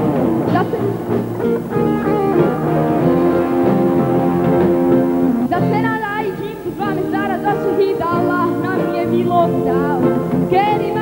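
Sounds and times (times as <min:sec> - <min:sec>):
live band music led by guitar: 0:00.0 - 0:11.0.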